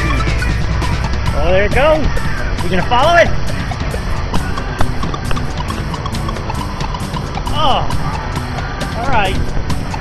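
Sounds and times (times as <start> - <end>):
background music: 0.0 - 10.0
wind buffeting microphone: 0.6 - 10.0.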